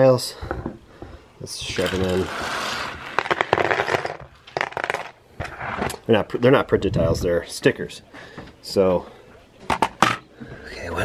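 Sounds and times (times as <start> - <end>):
plastic pieces clattering on table: 1.6 - 6.0.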